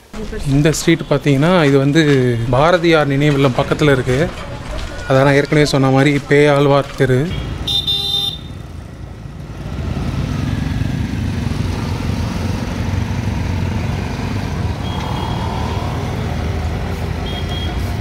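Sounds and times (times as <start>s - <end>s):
auto-rickshaw engine rumble: 0.0s - 18.0s
cars passing: 0.0s - 18.0s
motor scooters passing: 1.3s - 18.0s.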